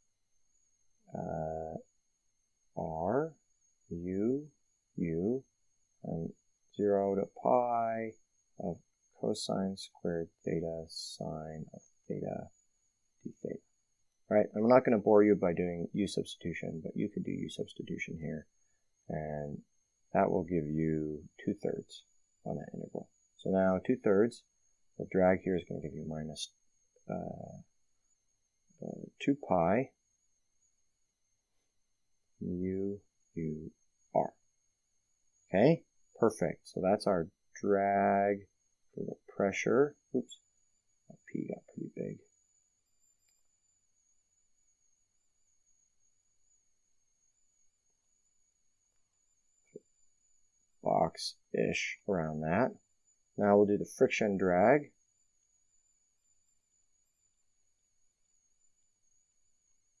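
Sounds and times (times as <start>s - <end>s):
person speaking: 3.9s - 5.4s, 6.1s - 12.5s, 14.3s - 18.4s, 19.1s - 19.6s, 20.2s - 24.4s, 25.0s - 26.5s, 27.1s - 27.6s, 28.8s - 29.9s, 32.4s - 34.4s, 35.5s - 40.4s, 41.2s - 42.2s, 50.8s - 52.8s, 53.4s - 54.9s.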